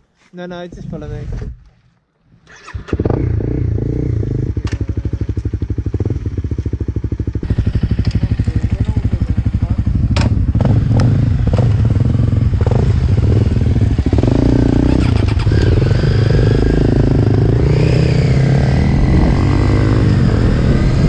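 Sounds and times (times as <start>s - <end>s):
dirt bikes riding past: 2.9s - 21.0s
motorcycle engine idling: 3.2s - 17.5s.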